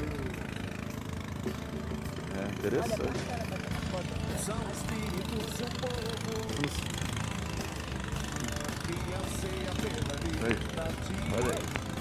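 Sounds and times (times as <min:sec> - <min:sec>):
motor running low rumble: 0:00.0 - 0:12.0.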